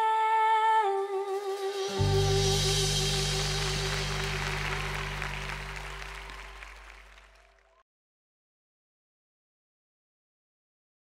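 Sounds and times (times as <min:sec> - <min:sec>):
woman singing a long note: 0:00.0 - 0:04.7
low instrumental accompaniment: 0:01.4 - 0:07.2.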